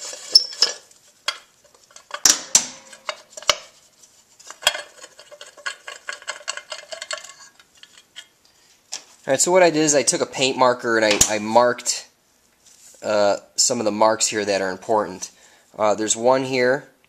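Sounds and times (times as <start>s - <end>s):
metal tool and bolts clinking: 0.0s - 3.8s, 4.5s - 8.4s.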